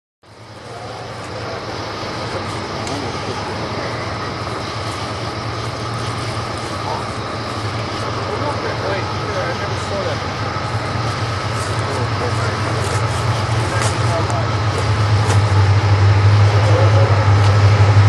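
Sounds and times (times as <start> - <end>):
freight train locomotives rumbling: 0.2 - 18.0.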